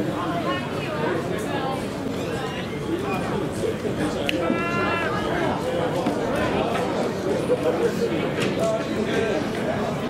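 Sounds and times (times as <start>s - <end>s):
people talking: 0.0s - 10.0s
high drawn-out shout: 4.4s - 5.4s.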